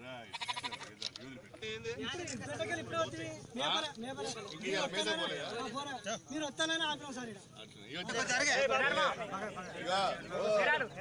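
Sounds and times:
crowd voices: 0.0s - 11.0s
sheep bleating: 0.3s - 0.9s.

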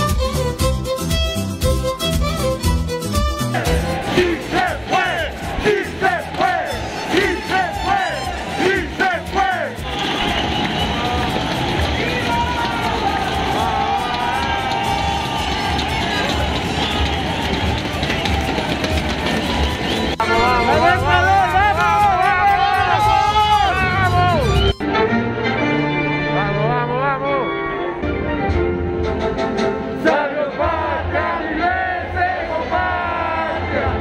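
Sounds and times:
crowd noise: 0.9s - 34.0s
fans chanting: 3.5s - 14.7s, 30.0s - 34.0s.

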